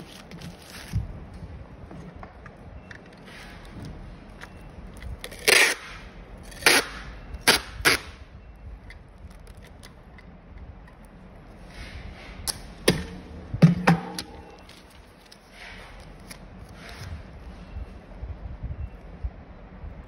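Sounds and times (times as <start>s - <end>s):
label peeling and crackling: 0.0s - 1.4s, 3.0s - 13.2s, 14.2s - 17.6s.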